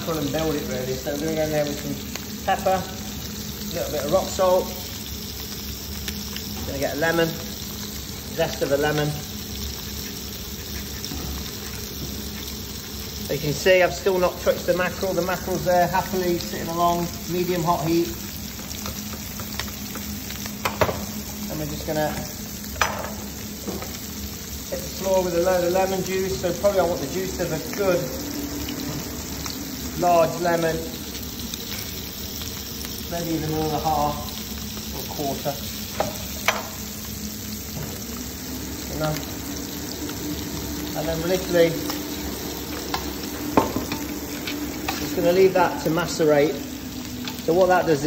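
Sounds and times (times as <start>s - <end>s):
fish sizzling in a frying pan: 0.0s - 48.0s.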